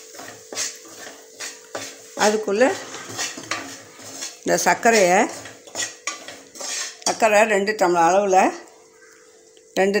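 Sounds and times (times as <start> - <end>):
metal ladle scraping metal pan: 0.0 - 7.2.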